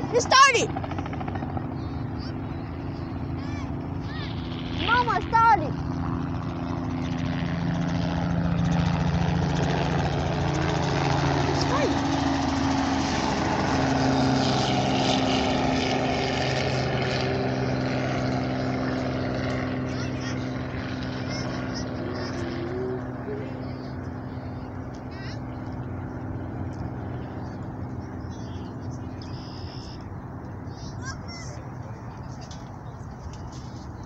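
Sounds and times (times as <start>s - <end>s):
helicopter rotor and engine drone: 0.0s - 34.0s.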